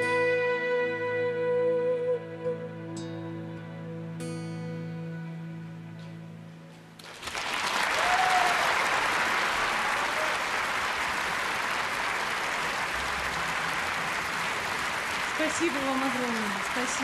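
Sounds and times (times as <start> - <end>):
large audience applauding: 7.0 - 17.0.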